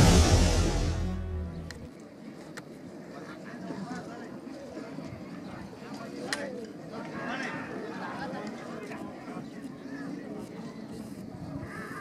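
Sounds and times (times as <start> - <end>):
people talking: 1.9 - 12.0.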